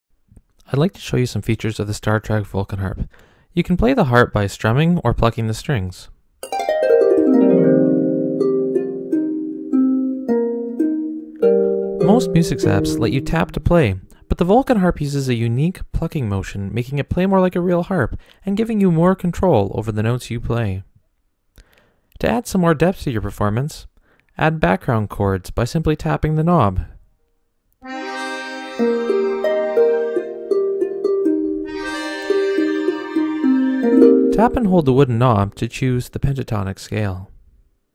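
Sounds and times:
plucked harp-like notes: 0:06.4 - 0:14.2, 0:28.1 - 0:35.4
steady low held tone: 0:11.5 - 0:14.3, 0:33.8 - 0:35.5.

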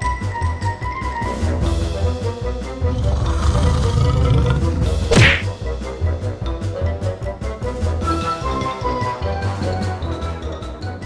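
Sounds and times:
background music: 0:00.0 - 0:11.0
cartoon whack sound effect: 0:05.1 - 0:05.5.

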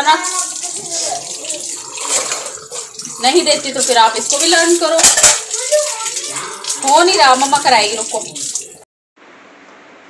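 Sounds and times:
tap water running into sink: 0:00.0 - 0:08.8.

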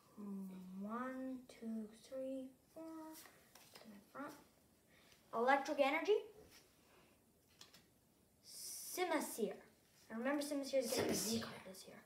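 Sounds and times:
young person speaking: 0:00.0 - 0:04.5, 0:05.3 - 0:06.4, 0:08.4 - 0:12.0.

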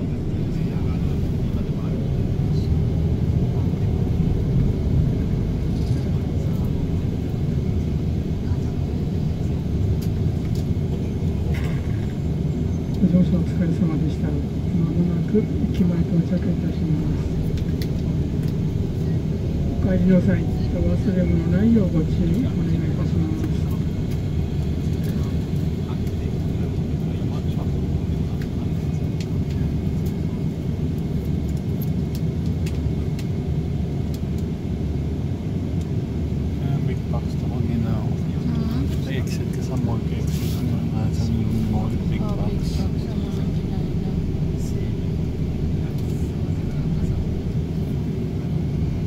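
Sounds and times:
faint voices: 0:00.0 - 0:31.4
bus engine and road rumble: 0:00.0 - 0:49.0.

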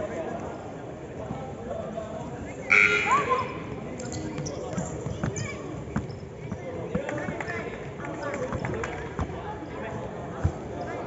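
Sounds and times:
players and spectators talking: 0:00.0 - 0:11.0.

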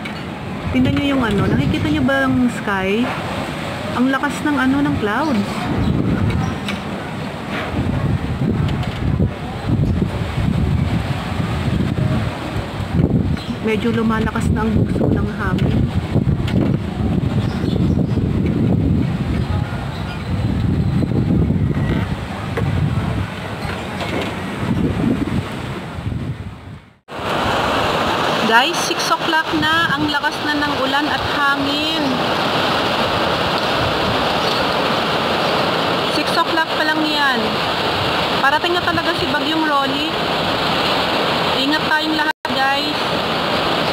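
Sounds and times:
heavy rain: 0:00.0 - 0:26.1, 0:27.0 - 0:43.9
gusty wind buffeting microphone: 0:00.0 - 0:43.9.

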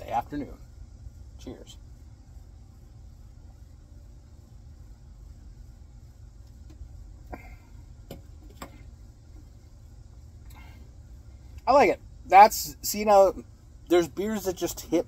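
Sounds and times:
steady low rumble: 0:00.0 - 0:15.0.

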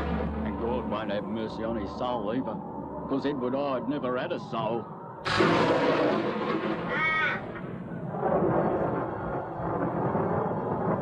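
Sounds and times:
rolling thunder: 0:00.0 - 0:11.0.

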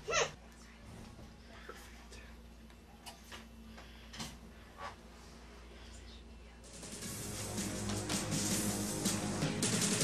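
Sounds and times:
low steady hum: 0:00.0 - 0:09.5.

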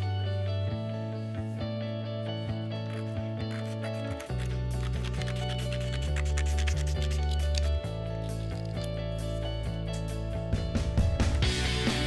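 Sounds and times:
background music with steady beat: 0:00.0 - 0:12.0
bass line: 0:07.7 - 0:12.0.

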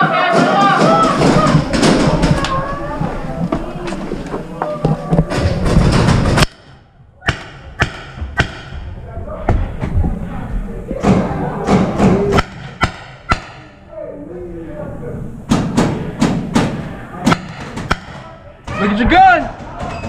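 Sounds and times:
faint shouted voices: 0:00.0 - 0:05.9, 0:08.9 - 0:12.8.

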